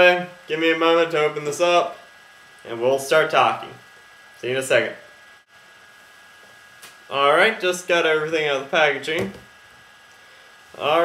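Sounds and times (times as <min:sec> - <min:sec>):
faint high-pitched electrical whine: 0:00.0 - 0:11.0
steady hiss: 0:00.0 - 0:11.0.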